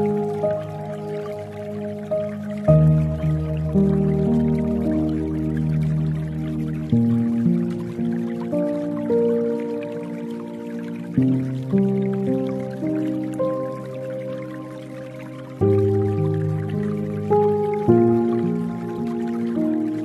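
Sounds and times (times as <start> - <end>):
dripping water: 0.0 - 20.0
slow soft piano music: 0.0 - 20.0.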